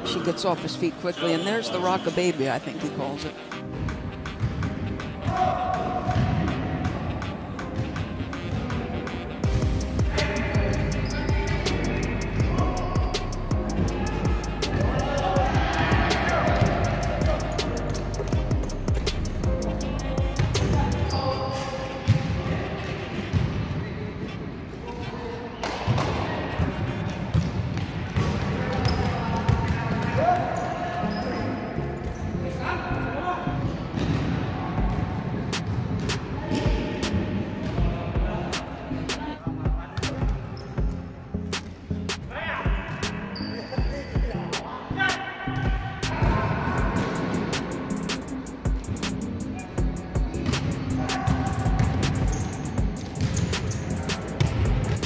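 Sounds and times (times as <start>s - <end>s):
music: 0.0s - 55.0s
basketball bouncing on court floor: 27.3s - 30.4s, 49.8s - 55.0s.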